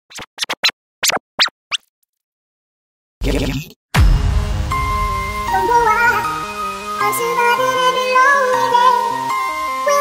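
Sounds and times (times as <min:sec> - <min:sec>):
record scratch sweeps: 0:03.3 - 0:07.8.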